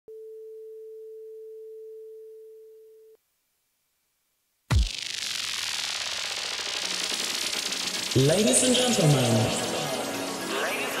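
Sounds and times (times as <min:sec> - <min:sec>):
sine test tone: 0:00.1 - 0:03.2.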